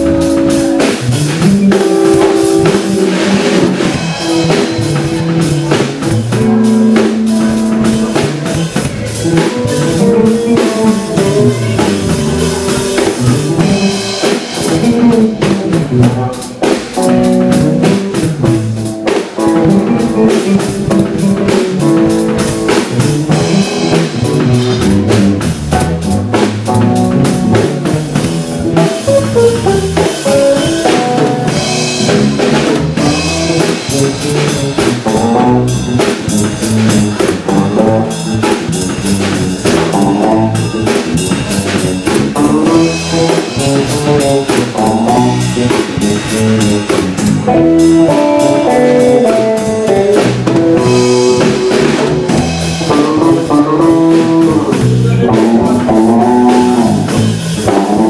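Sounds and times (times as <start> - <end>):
drum kit steady beat: 0.0 - 58.0
electric bass: 0.0 - 58.0
electric guitar melodic lines: 0.0 - 58.0.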